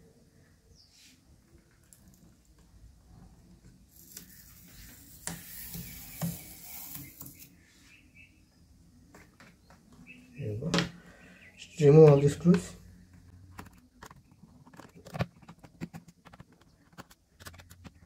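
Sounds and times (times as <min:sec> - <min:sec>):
rubber strip scraping plastic: 0:03.9 - 0:07.5.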